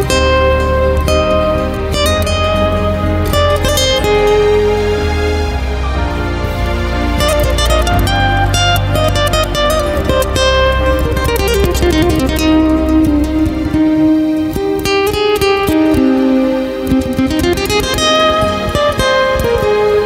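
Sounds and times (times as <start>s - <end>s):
low bass tone: 0.0s - 15.1s
fingerpicked nylon-string guitar: 0.0s - 20.0s.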